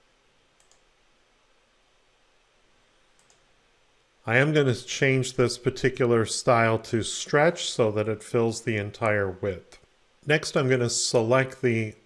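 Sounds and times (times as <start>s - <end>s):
faint computer mouse clicks: 0.6s - 0.9s, 3.2s - 3.4s.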